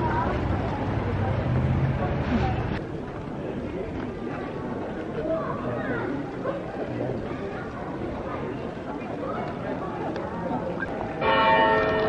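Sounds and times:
people chattering: 0:00.0 - 0:12.0
large church bell ringing: 0:11.1 - 0:12.0.

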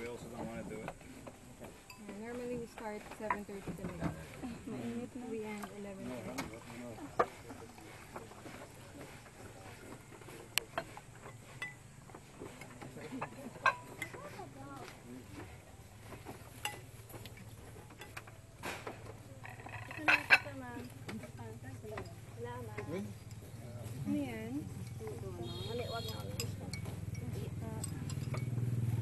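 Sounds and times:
cutlery and dishes clinking: 0:26.0 - 0:28.6.

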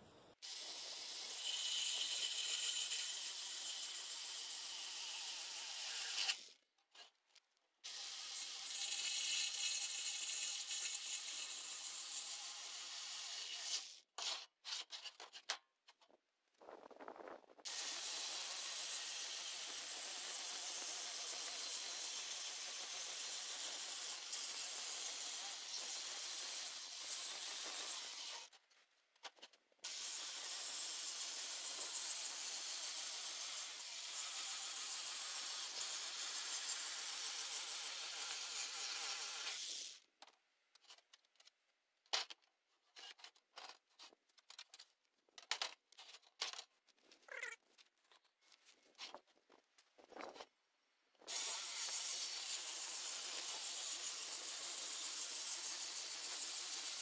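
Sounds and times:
jigsaw cutting sheet metal: 0:00.4 - 0:06.6, 0:07.8 - 0:14.9, 0:17.7 - 0:28.5, 0:29.8 - 0:40.0, 0:51.3 - 0:57.0.

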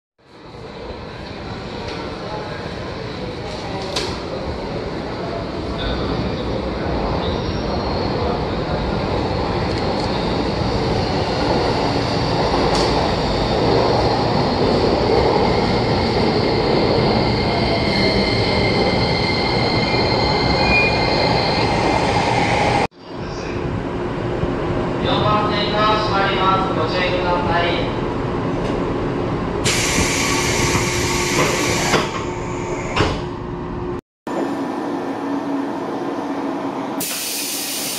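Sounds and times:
high brake squeal: 0:07.2 - 0:08.4, 0:17.5 - 0:21.8.

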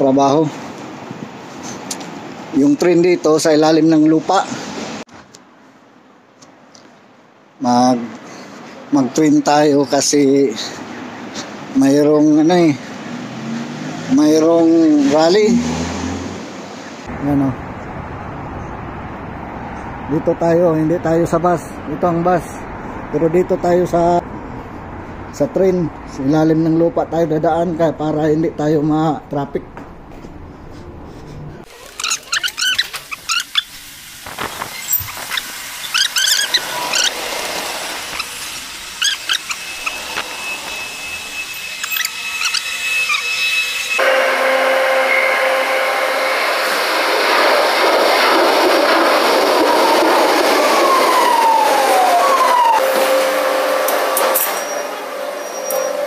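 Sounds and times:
footsteps: 0:29.7 - 0:31.7
falling whines: 0:31.7 - 0:56.0
metro train running: 0:33.6 - 0:56.0.

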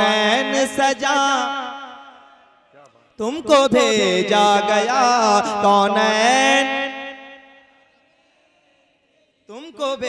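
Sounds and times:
man singing into a microphone: 0:00.0 - 0:02.4, 0:03.2 - 0:07.7, 0:09.5 - 0:10.0.

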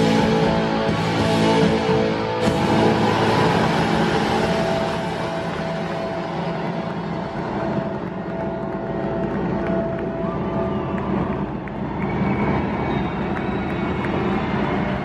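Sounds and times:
rock band final crash: 0:00.0 - 0:06.9
arena crowd noise: 0:00.0 - 0:15.0.

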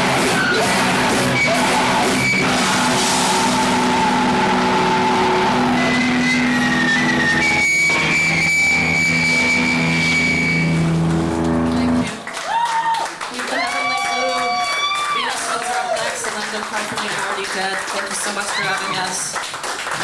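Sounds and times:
distorted electric guitar feedback: 0:00.0 - 0:12.2.

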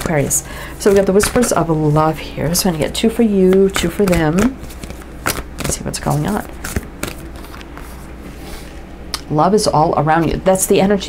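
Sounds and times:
low room hum: 0:00.0 - 0:11.0
cards rustling and sliding: 0:00.8 - 0:01.8, 0:03.4 - 0:08.8.

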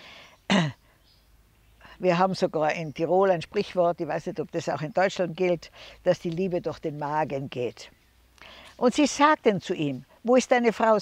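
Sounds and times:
faint breath: 0:00.0 - 0:01.0, 0:05.7 - 0:06.0, 0:08.4 - 0:08.8
woman clearing throat: 0:00.5 - 0:00.8.

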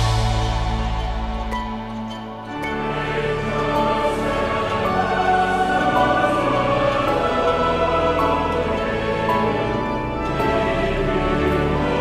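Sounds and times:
choir singing a hymn: 0:00.0 - 0:12.0
orchestral accompaniment: 0:00.0 - 0:12.0.

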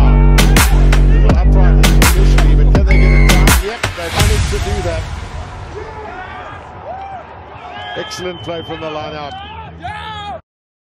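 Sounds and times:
referee's whistle: 0:02.9 - 0:03.6, 0:07.7 - 0:09.5
players shouting: 0:05.6 - 0:10.4.

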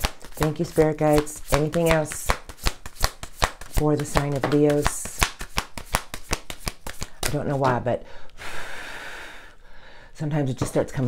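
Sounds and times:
woman breathing in: 0:08.0 - 0:10.2.

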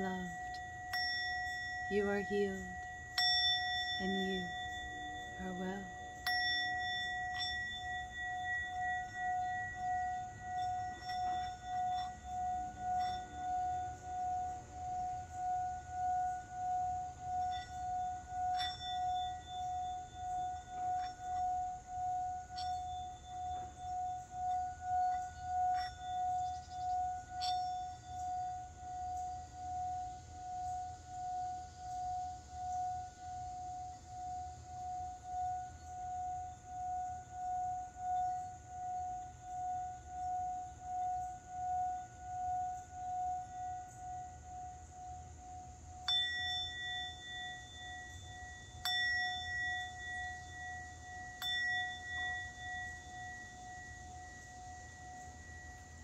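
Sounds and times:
singing bowl struck: 0:00.0 - 0:33.5, 0:46.0 - 0:56.0
mallet ticking against bowl: 0:00.0 - 0:56.0
singing bowl ringing tone: 0:00.0 - 0:56.0.

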